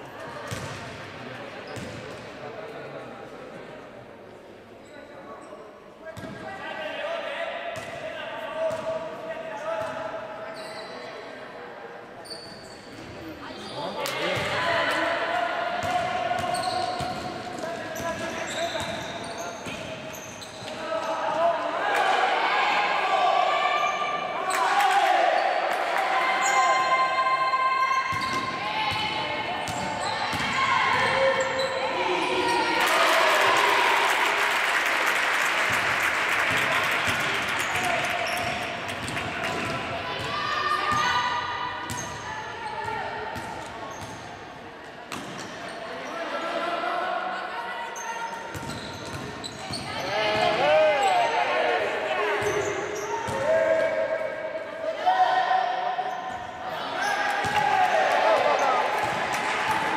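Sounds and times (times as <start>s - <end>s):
crowd-like noise: 0.0s - 59.9s
sneaker squeaks: 1.6s - 2.1s, 9.6s - 11.3s, 12.2s - 14.4s, 16.3s - 21.3s, 23.7s - 24.6s, 27.9s - 29.0s, 29.6s - 32.7s, 37.6s - 44.4s, 45.1s - 46.2s, 47.9s - 51.3s, 52.4s - 53.5s.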